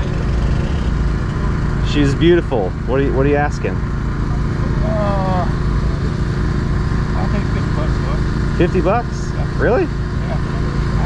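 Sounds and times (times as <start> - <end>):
low engine drone: 0.0 - 11.0.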